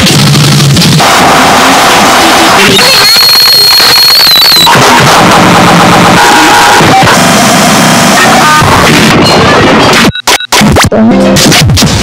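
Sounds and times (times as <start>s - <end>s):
harsh distorted noise music: 0.0s - 12.0s
high electronic whine: 0.0s - 12.0s.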